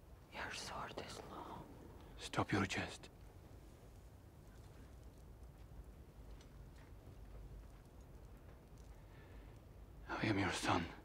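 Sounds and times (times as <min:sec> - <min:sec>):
person whispering: 0:00.3 - 0:03.1, 0:10.1 - 0:11.0.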